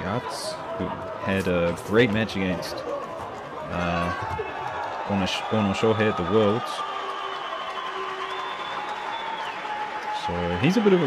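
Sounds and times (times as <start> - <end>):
crowd applauding: 2.8 - 11.0.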